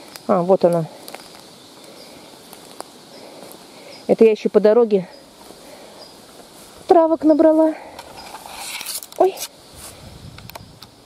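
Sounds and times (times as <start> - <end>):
footsteps on dry leaves and twigs: 0.0 - 4.2, 5.2 - 10.0
faint bird chirps: 0.3 - 4.4, 5.0 - 6.3.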